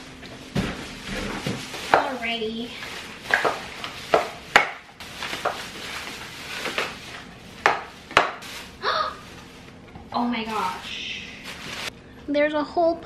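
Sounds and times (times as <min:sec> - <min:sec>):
plastic bags rustling: 0:00.0 - 0:12.0
packages knocking on countertop: 0:00.5 - 0:08.8.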